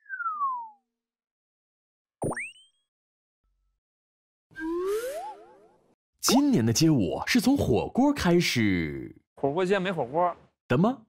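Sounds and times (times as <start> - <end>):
cartoon falling whistle: 0.0 - 0.8, 4.5 - 5.7
wobbling whistle tones: 0.0 - 0.8, 4.5 - 5.7
cartoon upward zip: 4.5 - 5.9.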